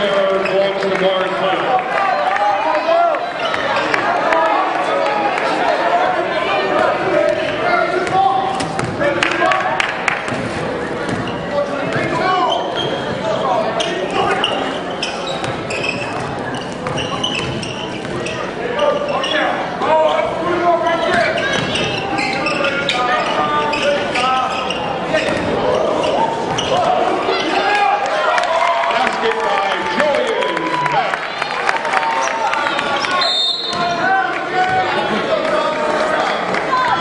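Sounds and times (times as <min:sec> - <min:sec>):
people shouting and talking: 0:00.0 - 0:37.0.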